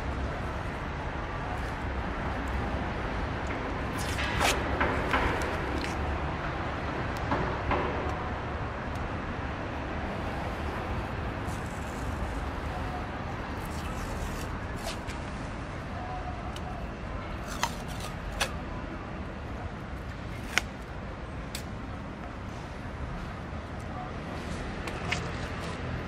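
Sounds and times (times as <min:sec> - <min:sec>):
distant traffic rumble: 0:00.0 - 0:26.0
masking tape rustling: 0:00.1 - 0:06.2, 0:10.3 - 0:15.5.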